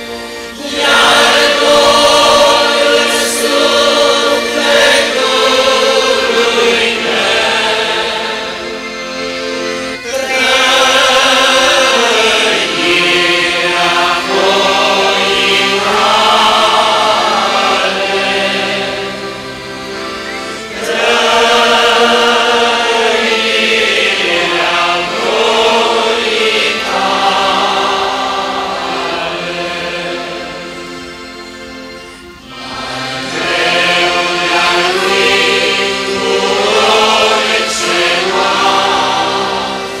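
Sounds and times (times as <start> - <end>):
congregation singing a hymn: 0.0 - 40.0.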